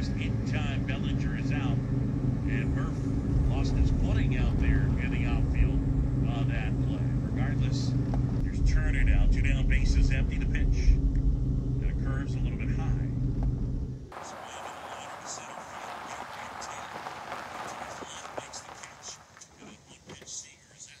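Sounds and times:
car engine and road rumble: 0.0 - 20.6.

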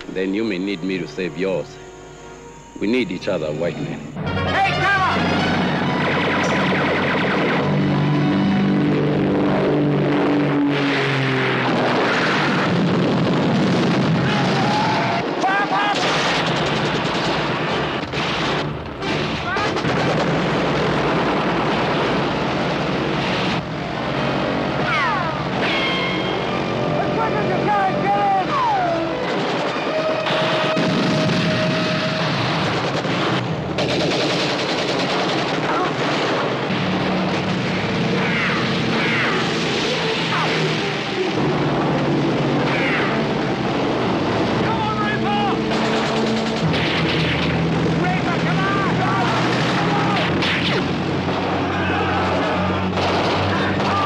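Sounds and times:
propeller aircraft engines running: 0.0 - 0.4, 2.9 - 15.4, 19.8 - 54.0
people shouting: 14.2 - 16.0, 24.8 - 26.2, 26.9 - 29.2, 38.1 - 40.8, 42.6 - 43.3, 44.6 - 45.7, 48.2 - 50.4, 51.4 - 54.0
men shouting: 26.9 - 29.2, 42.6 - 43.3, 44.6 - 45.7, 51.5 - 54.0.

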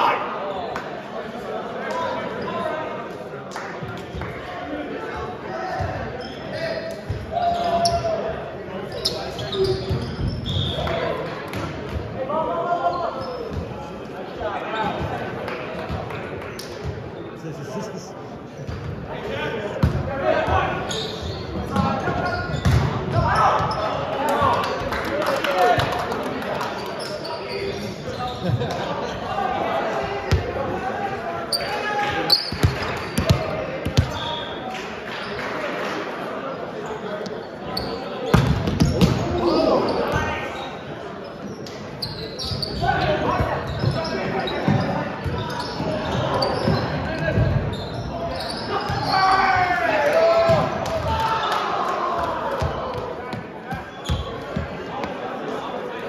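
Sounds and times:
players calling and chatting: 0.0 - 56.0
volleyballs struck and bouncing: 22.6 - 23.2.

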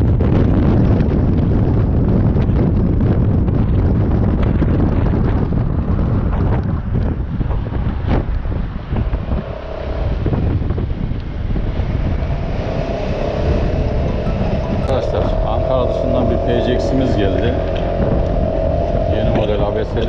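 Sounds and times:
scooter engine and road rumble: 0.0 - 20.0
wind buffeting microphone: 0.0 - 20.0
steady humming tone: 8.1 - 20.0.

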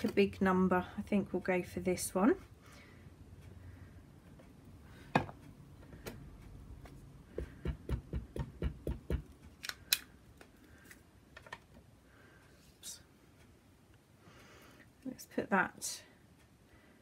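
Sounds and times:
ink pad tapping on stamp: 7.3 - 9.3.

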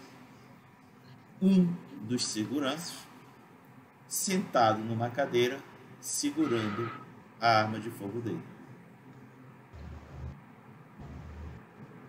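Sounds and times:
faint low rumbles: 9.1 - 10.4, 11.0 - 12.0.

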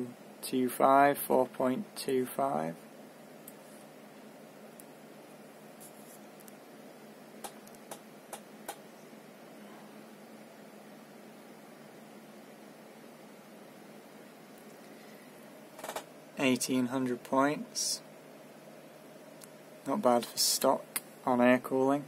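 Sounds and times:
computer fans whirring: 0.0 - 22.0.

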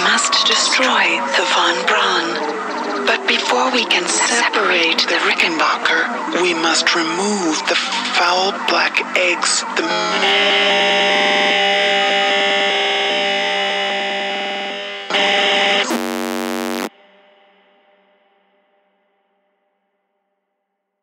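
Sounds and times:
sustained synthesizer chords: 0.0 - 18.2
buzzing synth hit: 15.9 - 16.9.

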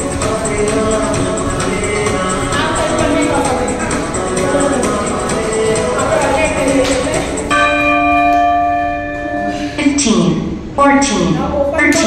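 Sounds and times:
workout music: 0.0 - 10.8
timer bell chime: 7.5 - 9.8.

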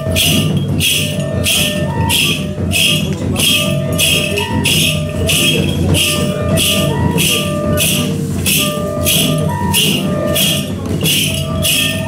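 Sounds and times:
bamboo flute playing held notes: 0.0 - 12.0
shaken bells jingling: 0.0 - 12.0.

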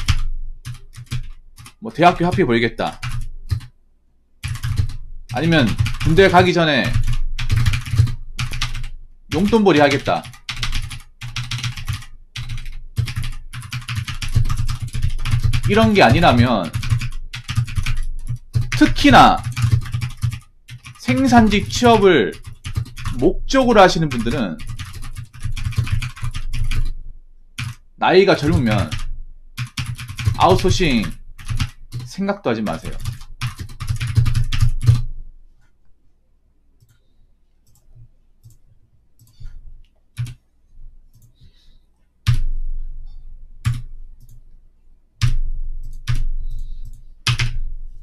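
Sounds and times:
rapid keyboard typing: 0.0 - 3.7, 4.4 - 27.0, 27.6 - 35.1, 40.2 - 40.4, 42.3 - 42.5, 43.6 - 44.4, 45.2 - 47.6.

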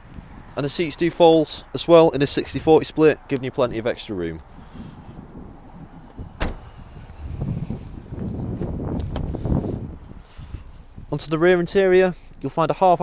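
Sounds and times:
low rumble of handled phone: 4.5 - 12.4.

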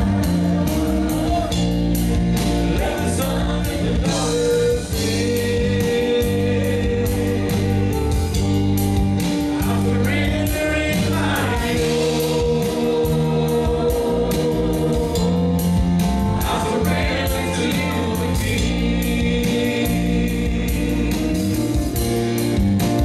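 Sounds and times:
drums: 0.0 - 23.0
keyboard: 0.0 - 23.0
women singing: 9.5 - 15.5, 16.4 - 21.2.

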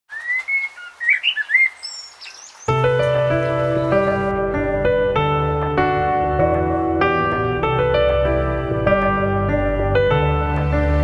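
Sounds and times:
birds singing: 0.1 - 4.2
keyboard chords: 2.7 - 11.0
low bass: 2.8 - 11.0.

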